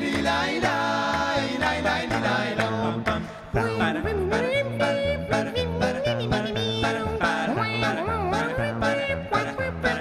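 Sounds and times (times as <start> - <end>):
male vocal group singing: 0.0 - 10.0
vocal percussive beats: 0.0 - 10.0.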